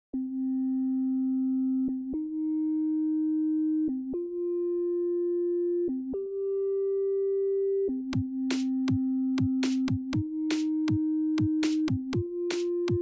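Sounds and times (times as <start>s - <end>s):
sine-like synthesizer notes: 0.1s - 13.0s.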